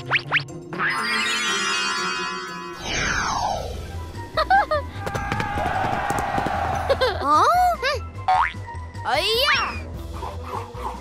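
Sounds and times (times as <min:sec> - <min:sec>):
cartoon falling sweep: 0:00.8 - 0:03.9.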